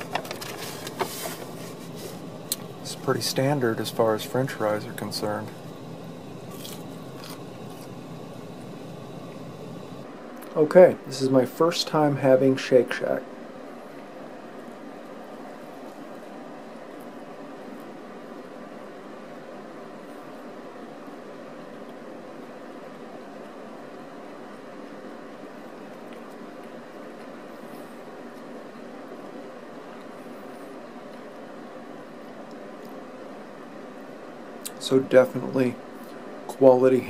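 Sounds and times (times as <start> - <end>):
steady fan hum: 0.0 - 37.0.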